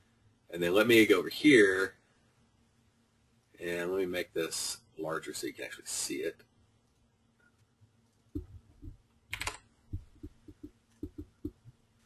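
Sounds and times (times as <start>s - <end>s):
keyboard and mouse taps: 8.4s - 11.6s.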